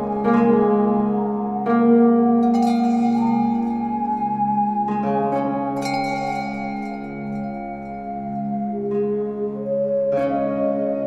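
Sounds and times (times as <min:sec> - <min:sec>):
low pulsing tone: 0:00.0 - 0:11.0
slow calm music: 0:00.0 - 0:11.0
bell-like note ringing: 0:02.4 - 0:05.0, 0:05.7 - 0:08.9.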